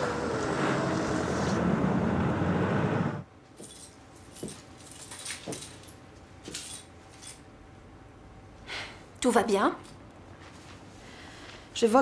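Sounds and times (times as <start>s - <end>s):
car engine noise: 0.0s - 3.3s
handling clicks and rustles: 3.6s - 7.5s.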